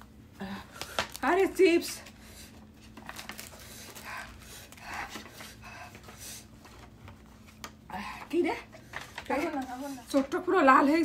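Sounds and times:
woman breathing hard: 3.4s - 6.6s.

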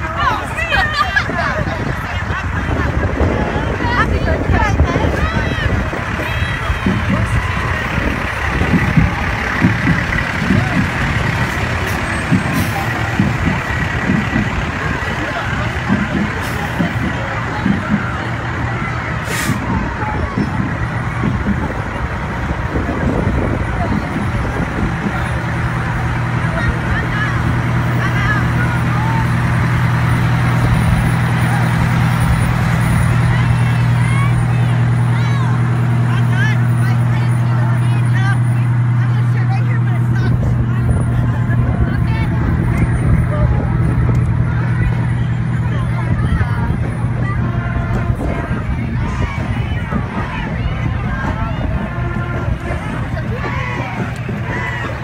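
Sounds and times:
crowd voices: 0.0s - 55.0s
fire engines running: 0.0s - 55.0s
low engine hum: 0.0s - 55.0s.

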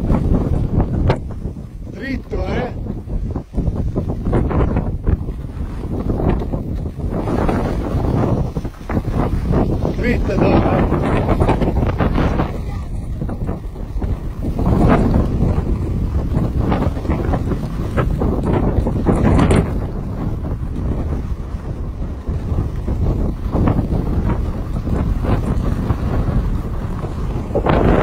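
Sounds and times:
skis scraping on snow: 0.0s - 28.0s
wind buffeting microphone: 0.0s - 28.0s.

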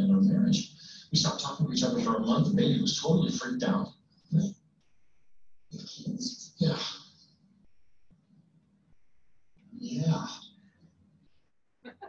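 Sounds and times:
faint room sound: 0.0s - 12.0s.

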